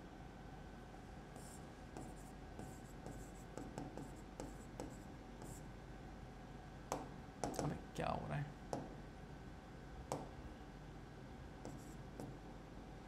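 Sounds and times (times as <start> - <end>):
pen tapping on a display: 3.0 - 5.0, 6.9 - 7.7, 10.1 - 10.3.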